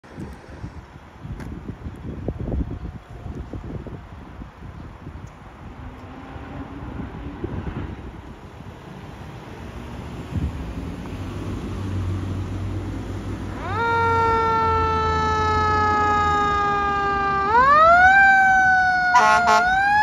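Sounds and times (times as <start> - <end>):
fire truck engine rumble: 0.0 - 20.0
fire engine siren wailing: 2.1 - 4.9, 12.8 - 20.0.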